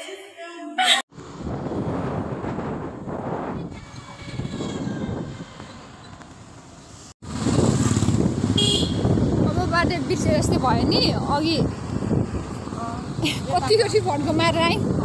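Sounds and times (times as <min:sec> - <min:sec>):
wind rumble on microphone: 0:01.2 - 0:06.3, 0:07.3 - 0:15.0.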